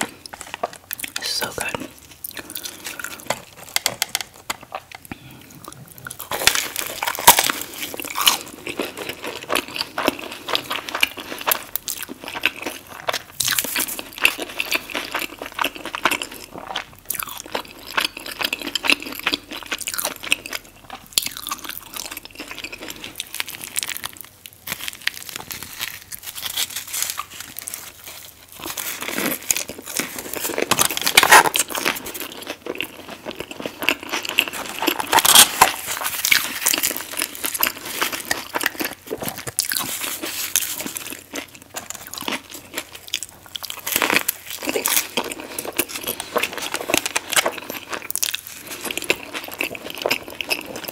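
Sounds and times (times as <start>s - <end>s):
crackly chewing: 0.0s - 50.9s
crunching bites into crispy food: 5.9s - 50.9s.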